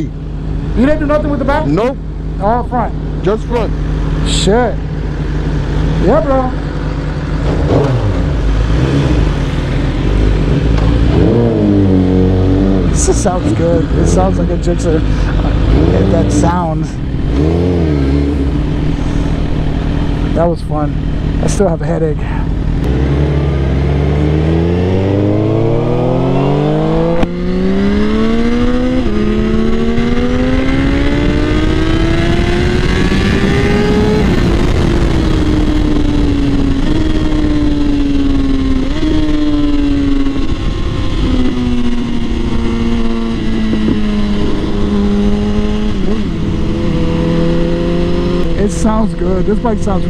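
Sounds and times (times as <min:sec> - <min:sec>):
motorcycle engine accelerating: 0:00.0 - 0:50.0
wind rush: 0:22.4 - 0:48.7.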